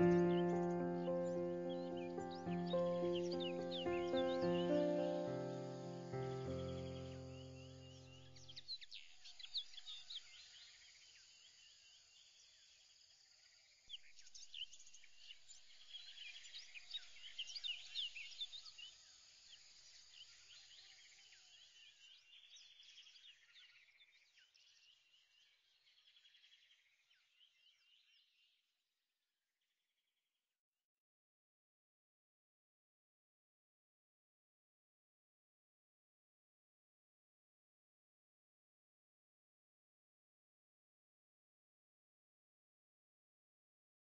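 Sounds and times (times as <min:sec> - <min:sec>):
held musical chord: 0:00.0 - 0:08.0
faint birdsong chirps: 0:00.0 - 0:28.6.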